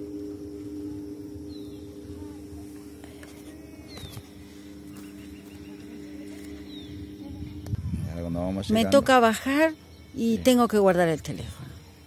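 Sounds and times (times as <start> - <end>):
chairlift machinery humming: 0.0 - 9.3
faint bird chirps: 0.1 - 12.0
wind rumble on microphone: 5.2 - 9.2.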